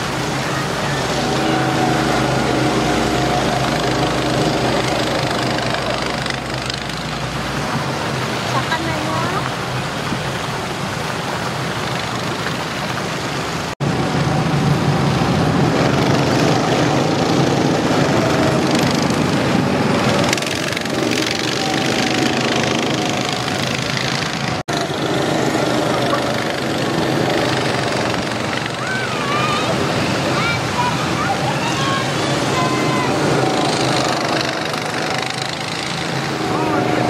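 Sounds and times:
voices: 0.0s - 10.0s, 15.9s - 37.0s
fountain water splashing: 0.0s - 37.0s
go-kart engines running: 0.0s - 37.0s.

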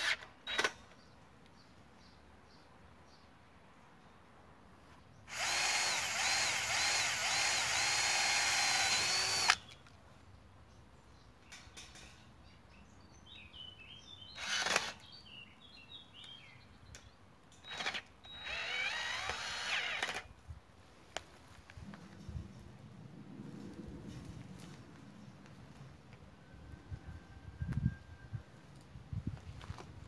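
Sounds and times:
drill sharp click: 5.3s - 9.7s, 17.6s - 20.3s
cordless drill whining: 5.3s - 9.8s, 14.4s - 15.0s, 17.6s - 20.3s.

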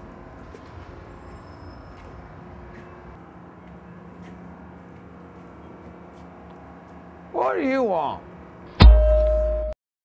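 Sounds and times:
city traffic rumble: 0.0s - 9.8s.

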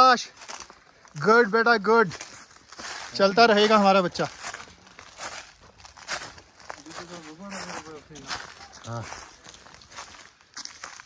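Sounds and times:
footsteps crunching on dry trail: 0.0s - 11.0s
faint voices speaking: 2.8s - 10.3s.

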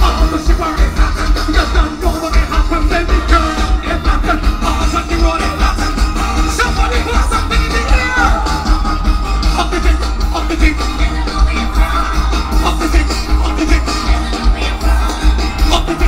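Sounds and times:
heavy bass beat: 0.0s - 16.0s
live band music through speakers: 0.0s - 16.0s.

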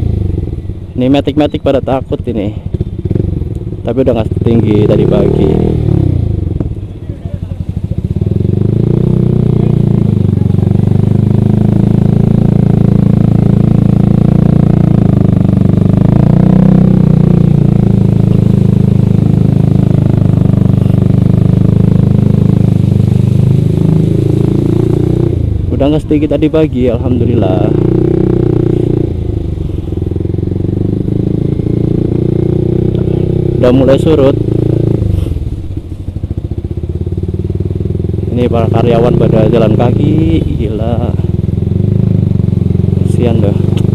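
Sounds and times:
motorcycle engine: 0.0s - 43.9s.

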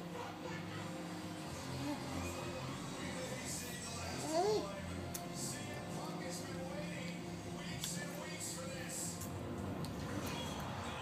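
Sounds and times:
commentary voices: 0.0s - 9.3s
faint music: 0.0s - 11.0s.

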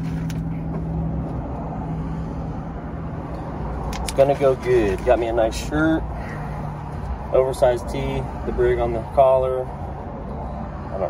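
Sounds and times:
car engine idling: 0.0s - 10.5s.

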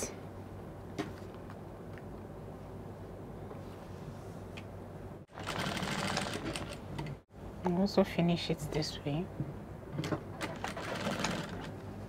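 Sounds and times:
sewing machine running: 5.3s - 6.8s, 10.4s - 11.7s.

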